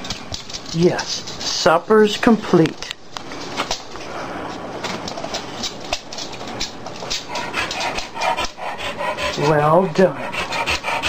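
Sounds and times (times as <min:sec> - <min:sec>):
dog claws clicking on hardwood: 0:00.0 - 0:01.5, 0:04.8 - 0:09.6.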